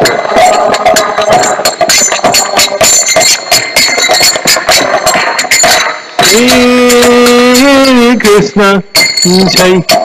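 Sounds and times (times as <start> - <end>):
drum strokes: 0.0 - 10.0
hand cymbals struck rhythmically: 0.0 - 10.0.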